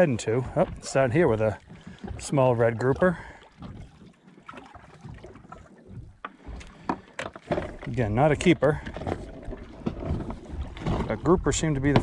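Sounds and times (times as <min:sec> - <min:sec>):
water splashing beside boat: 0:00.0 - 0:12.0.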